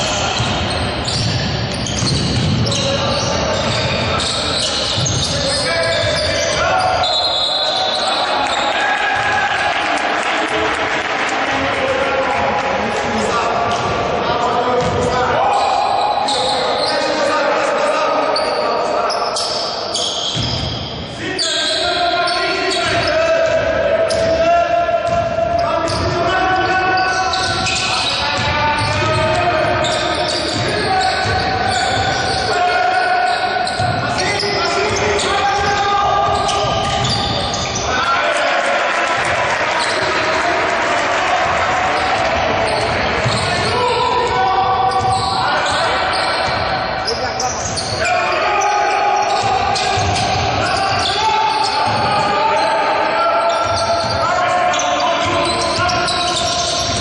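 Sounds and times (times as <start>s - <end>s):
players' voices and calls: 0.0s - 57.0s.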